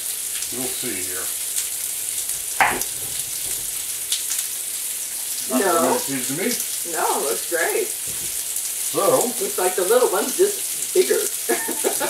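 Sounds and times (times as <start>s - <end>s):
steak sizzling on a grill: 0.0s - 12.0s.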